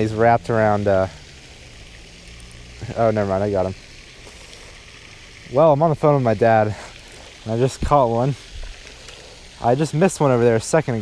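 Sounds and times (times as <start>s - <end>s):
man talking: 0.0s - 1.2s, 2.8s - 3.8s, 5.5s - 8.4s, 9.6s - 11.0s
fountain spray splashing: 0.0s - 11.0s.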